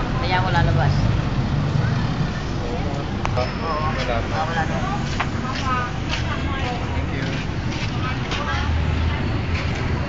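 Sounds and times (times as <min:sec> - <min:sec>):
street traffic noise: 0:00.0 - 0:10.0
vehicle engine humming: 0:00.0 - 0:10.0.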